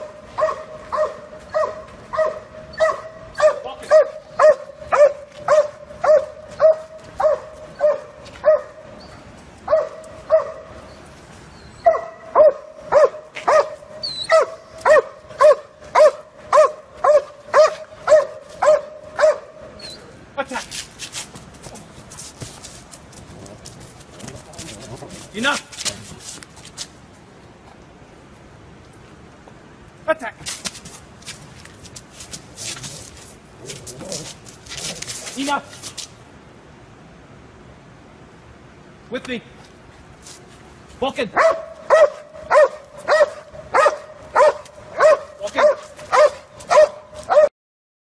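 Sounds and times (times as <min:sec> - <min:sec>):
dog's feet clicking on asphalt: 0:00.0 - 0:19.6, 0:20.5 - 0:27.8, 0:30.4 - 0:36.2, 0:39.6 - 0:47.5
street noise: 0:00.0 - 0:47.5.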